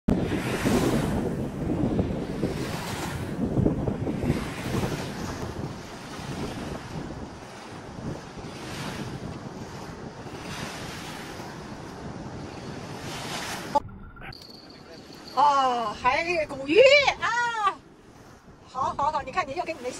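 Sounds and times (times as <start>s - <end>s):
river waves washing onto bank: 0.1s - 13.8s, 14.6s - 19.9s
wind rumbling on microphone: 0.1s - 19.9s.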